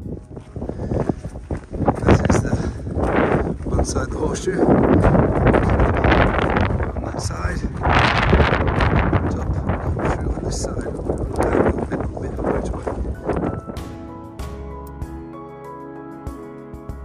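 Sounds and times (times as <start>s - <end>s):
wind buffeting microphone: 0.0s - 14.2s
music: 0.0s - 17.0s.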